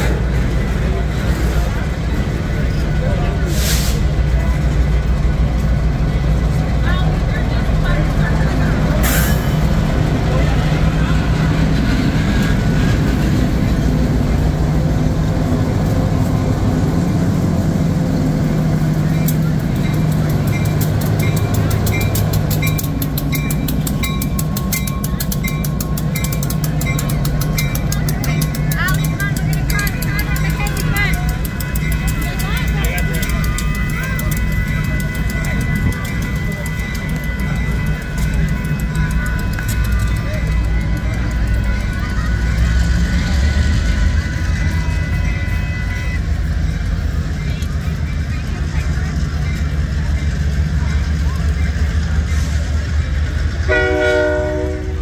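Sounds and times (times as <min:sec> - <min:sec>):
diesel locomotive passing: 0:00.0 - 0:55.0
freight train wheels rumbling: 0:00.0 - 0:55.0
level-crossing bell ringing: 0:19.1 - 0:46.1.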